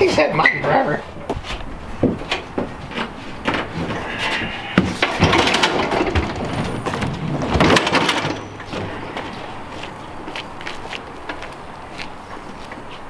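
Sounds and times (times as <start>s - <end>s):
aerator wheels and frame clattering: 0.0s - 12.9s.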